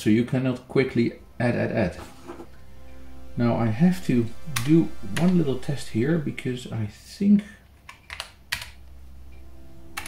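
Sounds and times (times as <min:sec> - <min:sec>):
steady low pitched tone: 0:00.0 - 0:07.7, 0:08.4 - 0:10.0.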